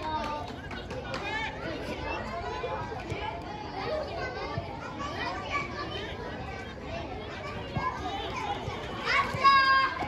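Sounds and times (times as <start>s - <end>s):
children calling and shouting: 0.0s - 10.0s.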